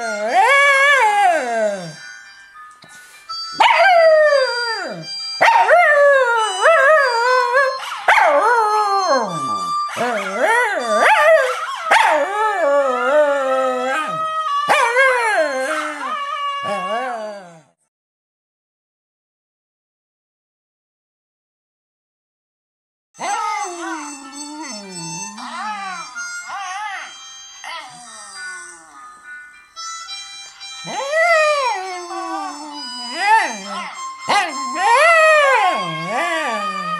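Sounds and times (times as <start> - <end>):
dog howling: 3.6 - 17.7, 23.2 - 27.1, 30.9 - 36.9
recorded howl from phone speaker: 5.9 - 17.7, 23.2 - 29.0, 30.9 - 36.9.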